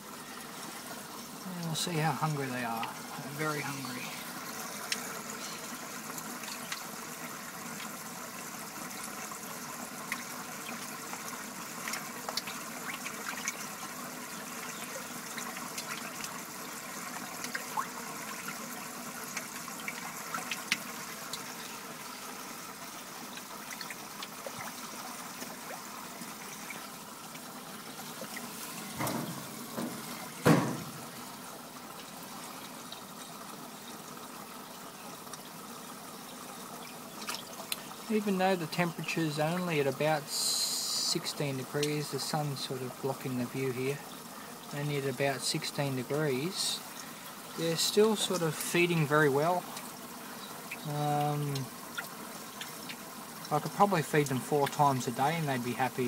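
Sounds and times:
water trickling: 0.0s - 56.0s
fish splashing at surface: 10.0s - 31.5s
loud knocks: 29.0s - 31.0s.

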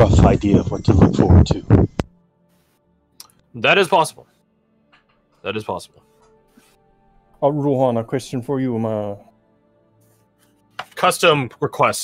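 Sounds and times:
man talking: 0.0s - 1.8s, 3.5s - 4.2s, 5.4s - 5.9s, 7.4s - 9.2s
faint background music: 0.0s - 12.0s.

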